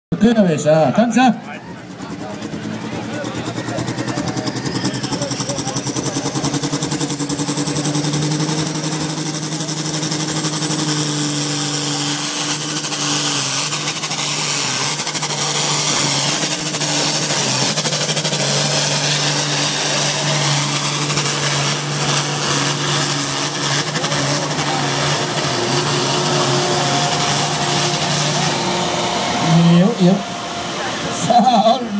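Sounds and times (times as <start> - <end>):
tractor diesel engine under load: 0.1 - 31.9
high turbocharger whistle: 3.1 - 31.9.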